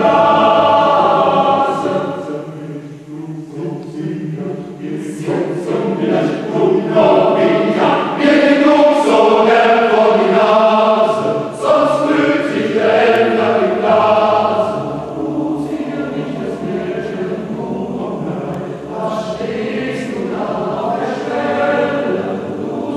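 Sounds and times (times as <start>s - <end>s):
mixed choir singing: 0.0s - 22.9s.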